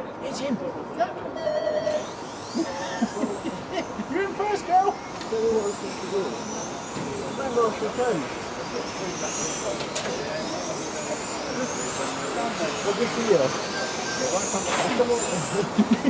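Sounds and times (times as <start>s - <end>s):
electric motors whining: 0.0s - 16.0s.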